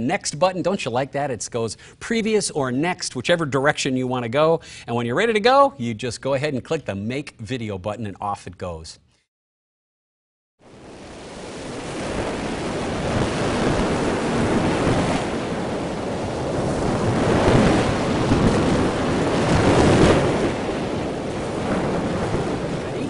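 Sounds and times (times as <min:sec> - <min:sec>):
ocean surf washing onto beach: 0:10.7 - 0:23.0.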